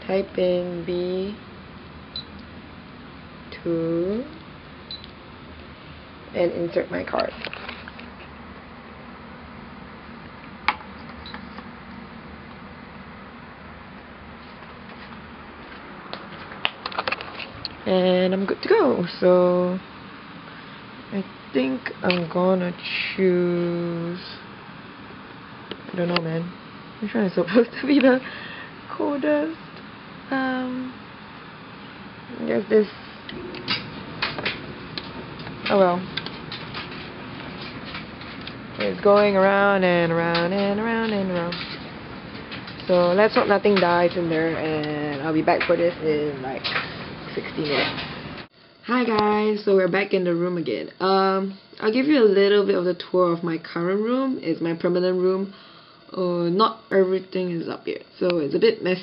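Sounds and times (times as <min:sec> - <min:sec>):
laundry machinery humming: 0:00.0 - 0:59.0
washing machine drum rumbling: 0:33.4 - 0:48.5.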